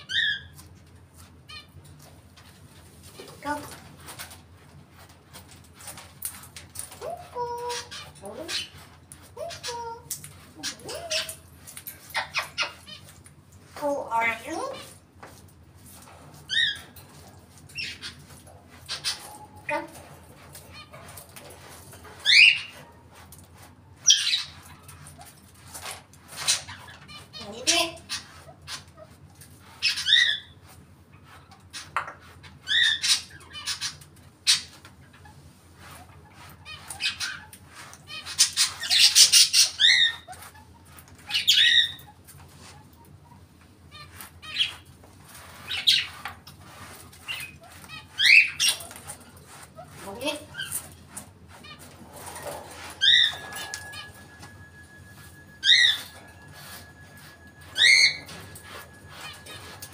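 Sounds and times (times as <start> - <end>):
parrot whistling: 53.0 - 59.8.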